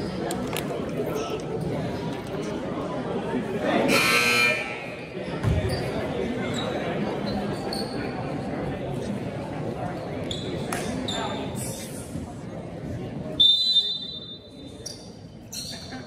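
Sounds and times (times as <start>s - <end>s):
crowd chatter: 0.0s - 16.0s
scoreboard horn buzzing: 3.9s - 4.7s
basketball bounce thud: 5.4s - 5.7s.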